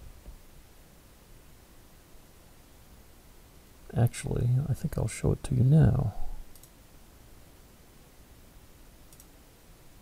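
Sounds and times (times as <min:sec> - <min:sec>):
computer mouse double click: 0:06.5 - 0:06.7, 0:09.1 - 0:09.3.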